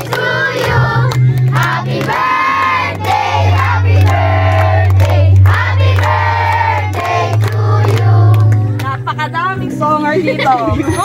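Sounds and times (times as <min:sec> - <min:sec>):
group singing long notes: 0:00.0 - 0:08.6
musical accompaniment: 0:00.0 - 0:11.0.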